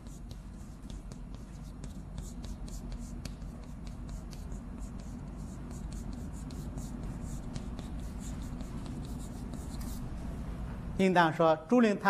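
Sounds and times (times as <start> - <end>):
chalk scratching on blackboard: 0.0 - 10.1.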